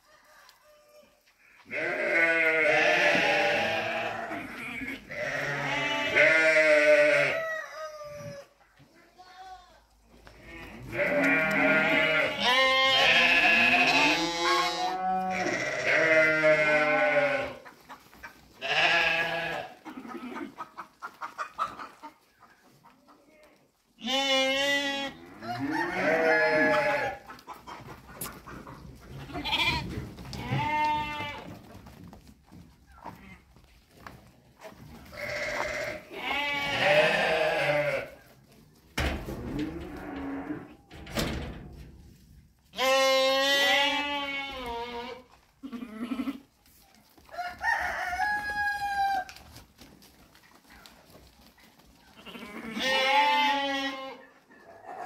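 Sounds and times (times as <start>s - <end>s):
sheep bleating: 1.7s - 7.5s, 10.4s - 17.6s, 18.6s - 20.4s, 24.0s - 27.2s, 29.2s - 31.5s, 35.1s - 38.2s, 42.7s - 46.5s, 52.2s - 54.3s.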